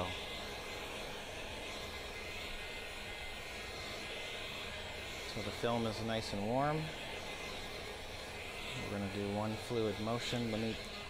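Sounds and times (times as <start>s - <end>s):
heat gun blowing: 0.0s - 11.0s.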